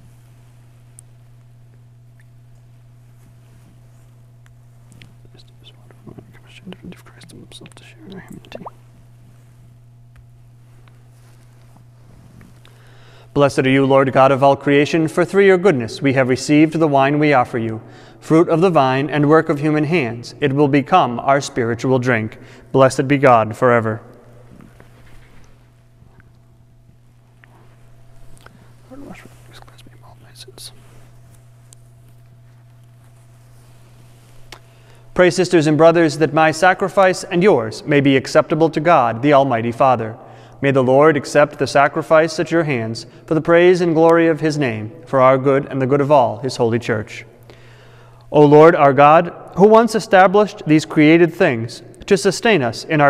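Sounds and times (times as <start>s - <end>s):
steady low hum: 0.0s - 53.0s
man murmuring quietly: 5.2s - 8.7s, 28.8s - 31.1s
man whispering: 5.2s - 8.7s, 28.8s - 30.9s.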